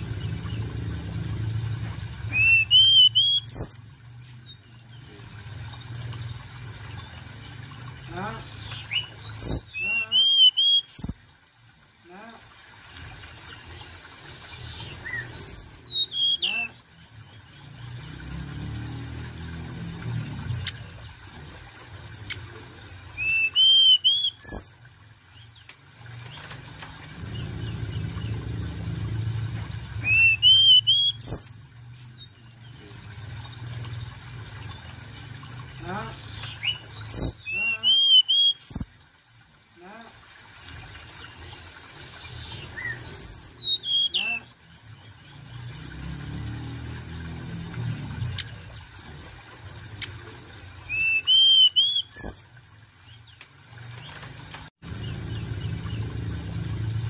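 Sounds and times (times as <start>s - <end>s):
bird singing high whistled notes: 2.3s - 3.8s, 15.1s - 16.7s, 23.2s - 24.7s, 30.0s - 31.6s, 50.9s - 52.4s
low rumble: 27.0s - 30.1s.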